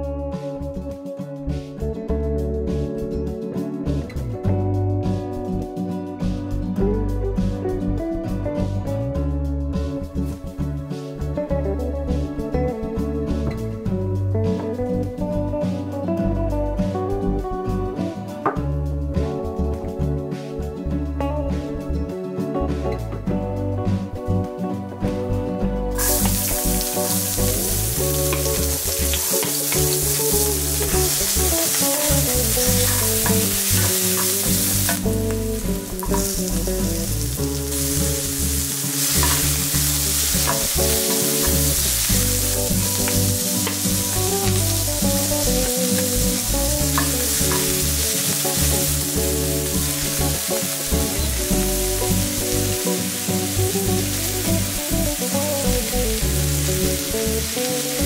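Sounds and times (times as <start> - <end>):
background music: 0.0 - 58.0
vegetables sizzling in oil: 26.0 - 58.0.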